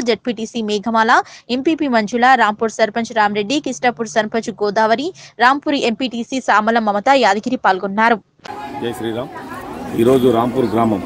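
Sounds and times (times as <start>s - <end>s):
background chatter: 8.5s - 11.0s.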